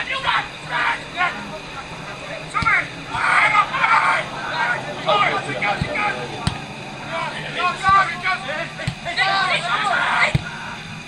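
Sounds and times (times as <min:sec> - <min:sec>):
players shouting: 0:00.0 - 0:11.0
low thuds: 0:00.5 - 0:09.2.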